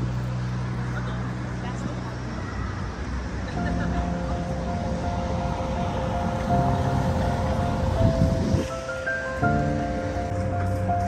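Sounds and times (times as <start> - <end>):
traffic noise: 0.0 - 11.0
music with held notes: 3.6 - 11.0.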